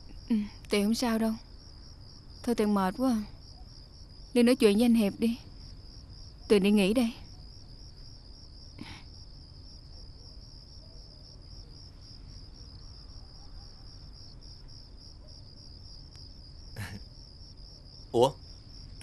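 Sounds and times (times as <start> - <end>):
crickets chirping: 0.0 - 19.0.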